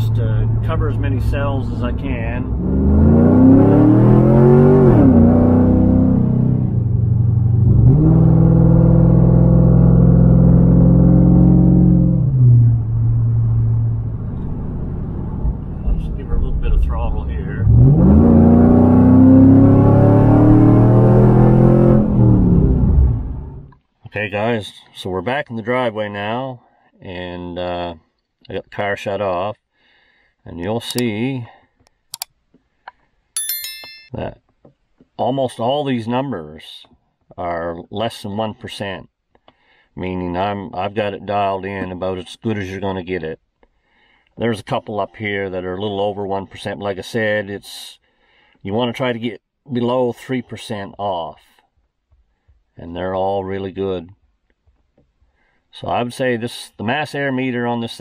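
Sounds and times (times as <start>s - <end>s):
high bell ding: 33.4s - 34.2s.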